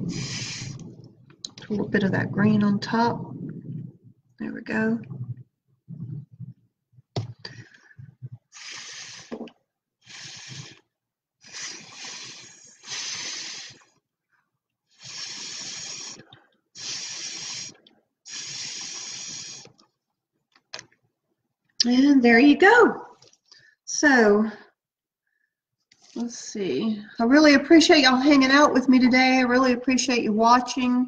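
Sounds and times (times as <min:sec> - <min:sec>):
airy puffs through a straw: 0:00.0 - 0:01.1, 0:07.5 - 0:14.0, 0:14.9 - 0:19.9
soft low sounds: 0:00.0 - 0:08.4.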